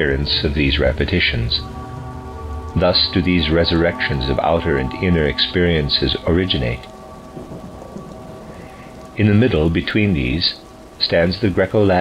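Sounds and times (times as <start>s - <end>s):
low rumble: 0.0s - 11.5s
background hiss: 0.0s - 12.0s
faint steady tones: 0.0s - 12.0s.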